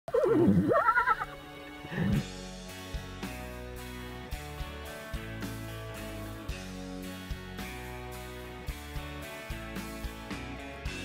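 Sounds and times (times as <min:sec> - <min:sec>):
horse whinnying: 0:00.1 - 0:02.2
quiet sustained music: 0:00.3 - 0:11.0.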